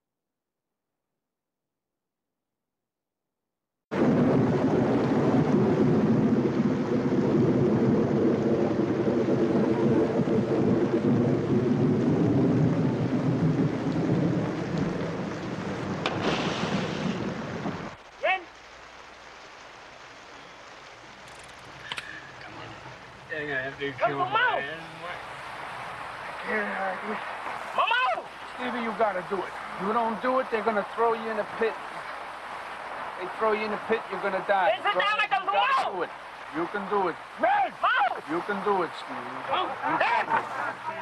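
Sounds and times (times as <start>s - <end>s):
rushing splashing river water: 3.9s - 41.0s
sharp splash: 16.0s - 22.8s.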